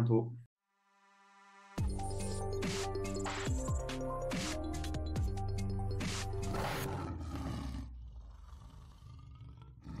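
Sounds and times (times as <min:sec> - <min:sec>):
logo music: 0:01.8 - 0:06.8
lion roar: 0:06.5 - 0:10.0.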